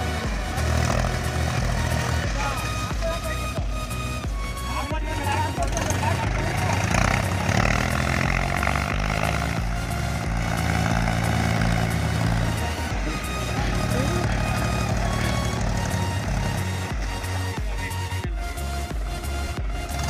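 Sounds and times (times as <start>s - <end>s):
background music with steady beat: 0.0s - 20.0s
tractor diesel engine under load: 0.0s - 20.0s.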